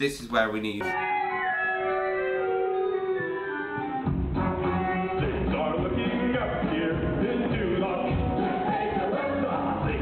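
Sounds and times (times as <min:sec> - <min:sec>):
pit band music: 0:03.2 - 0:10.0.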